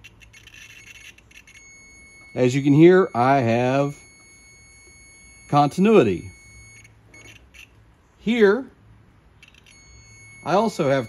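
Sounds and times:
multimeter beeper crackling: 0:00.0 - 0:07.8, 0:09.4 - 0:11.0
steady high beep: 0:00.8 - 0:07.7, 0:09.4 - 0:11.0.

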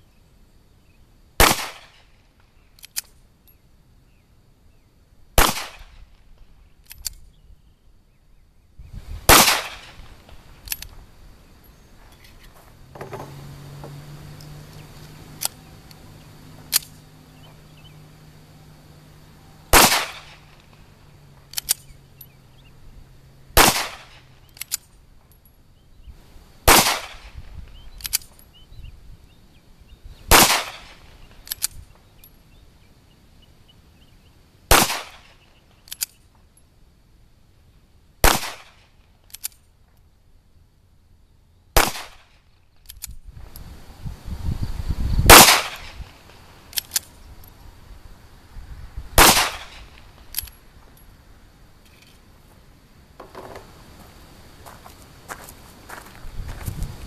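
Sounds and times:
pistol shots: 0:01.4 - 0:02.1, 0:05.4 - 0:06.1, 0:09.3 - 0:10.1, 0:19.7 - 0:20.8, 0:23.6 - 0:24.3, 0:26.7 - 0:27.4, 0:30.3 - 0:31.1, 0:34.7 - 0:35.4, 0:38.2 - 0:38.8, 0:41.8 - 0:42.3, 0:45.3 - 0:46.2, 0:49.2 - 0:50.2
small clicks: 0:02.4 - 0:03.6, 0:06.8 - 0:07.3, 0:14.4 - 0:16.0, 0:21.4 - 0:22.4, 0:24.1 - 0:25.5, 0:28.0 - 0:28.5, 0:31.2 - 0:32.4, 0:35.2 - 0:36.4, 0:38.7 - 0:40.1, 0:42.2 - 0:43.7, 0:45.7 - 0:47.6.

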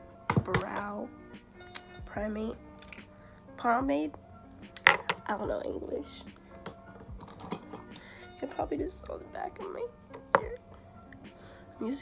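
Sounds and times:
faint background music: 0:00.0 - 0:12.0
clicks of small items handled: 0:06.6 - 0:08.1.

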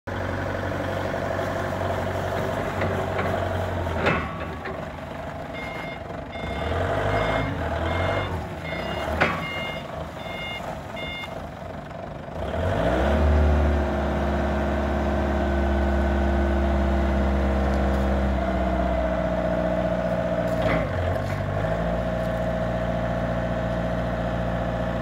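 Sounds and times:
forklift diesel engine running: 0:00.1 - 0:25.0
tyres on gravel: 0:01.3 - 0:12.2, 0:17.0 - 0:22.9
reversing alarm beeps: 0:05.5 - 0:11.4.

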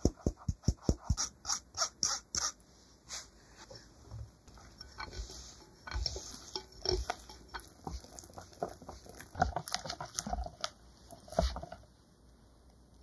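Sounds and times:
whisk stirring batter in bowl: 0:04.7 - 0:11.7.

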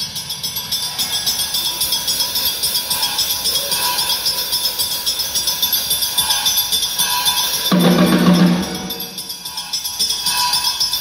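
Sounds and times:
light rattling percussion: 0:00.0 - 0:11.0.

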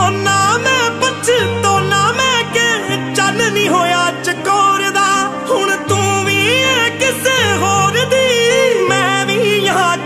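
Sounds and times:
solo voice singing melismatic line: 0:00.0 - 0:10.0
sustained backing chords: 0:00.0 - 0:10.0.

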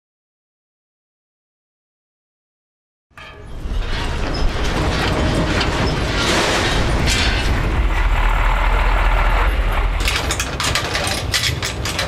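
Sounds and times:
truck engine idling: 0:07.5 - 0:10.4.

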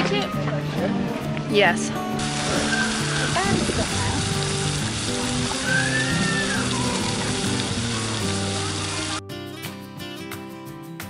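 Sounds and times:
background music: 0:00.0 - 0:11.0
fountain water splashing: 0:02.2 - 0:09.2.

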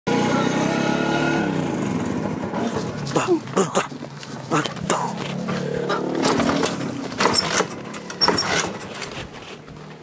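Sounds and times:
scooter engine running and stalling: 0:01.3 - 0:09.2.

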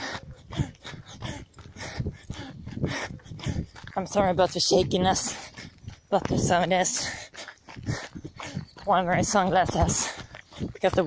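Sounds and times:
runner panting heavily: 0:00.0 - 0:11.0.

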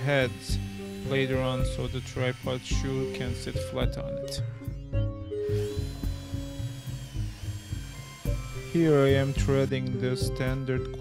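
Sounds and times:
cordless drill whining: 0:00.0 - 0:04.0, 0:05.3 - 0:11.0
background music with low beat: 0:00.0 - 0:11.0.

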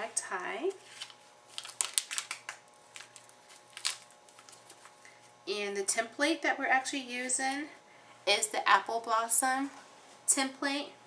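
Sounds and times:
plastic clicks and crinkling: 0:01.0 - 0:04.9.

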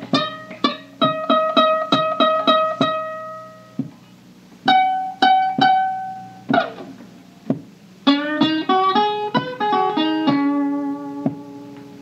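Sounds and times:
plucked string instrument notes: 0:00.0 - 0:12.0.

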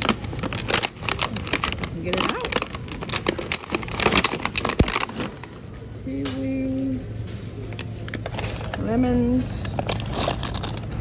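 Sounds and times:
plastic pack crinkling: 0:00.0 - 0:05.8, 0:09.6 - 0:11.0.

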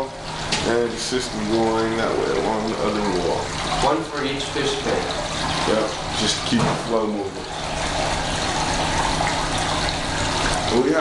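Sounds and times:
running water rushing: 0:00.0 - 0:11.0.

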